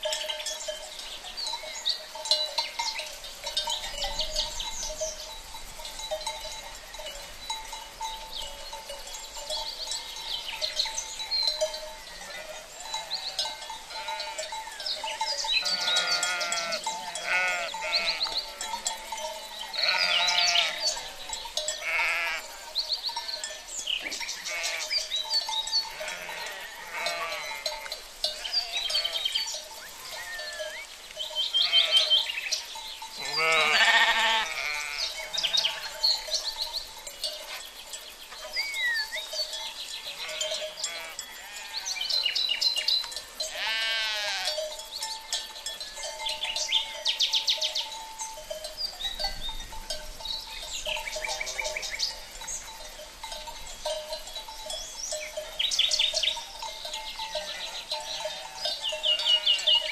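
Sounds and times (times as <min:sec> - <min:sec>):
sheep and goats bleating: 0:00.0 - 0:37.7, 0:38.4 - 0:50.0, 0:50.8 - 0:59.9.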